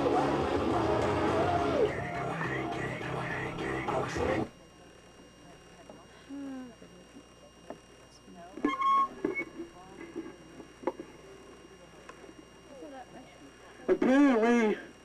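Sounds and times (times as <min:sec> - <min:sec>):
faint shouts and voices: 0:00.0 - 0:04.6.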